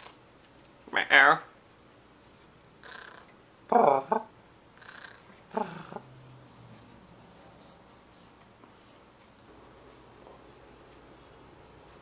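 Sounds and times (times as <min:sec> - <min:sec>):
cat purring: 0:02.8 - 0:04.2, 0:04.8 - 0:08.3.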